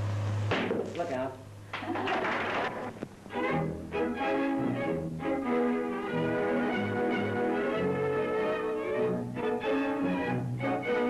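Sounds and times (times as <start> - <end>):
orchestral music with bowed strings: 3.3 - 11.0.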